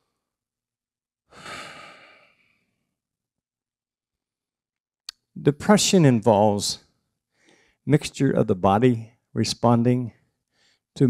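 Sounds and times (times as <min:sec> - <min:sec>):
man sighing into microphone: 0:01.3 - 0:02.6.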